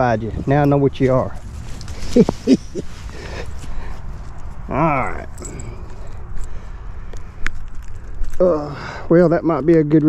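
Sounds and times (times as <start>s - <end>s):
steady low rumble: 0.0s - 8.4s.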